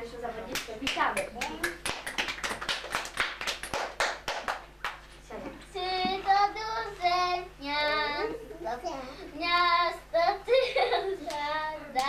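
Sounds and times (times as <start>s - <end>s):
girl singing or laughing: 10.2s - 11.9s.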